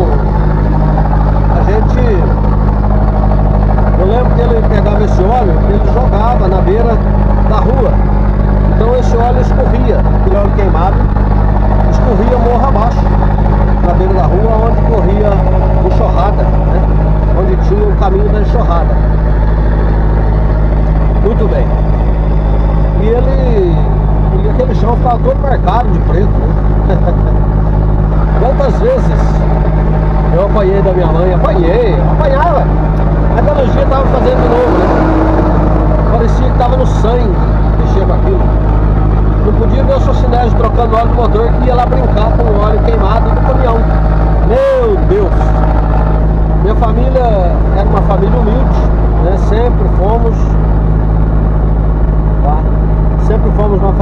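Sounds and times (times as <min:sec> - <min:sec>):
vehicle engine and road noise: 0:00.0 - 0:54.0.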